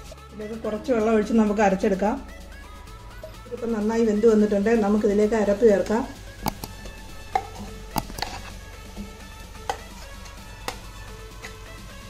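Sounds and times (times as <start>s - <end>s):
paste scraped into pan: 7.2s - 8.6s.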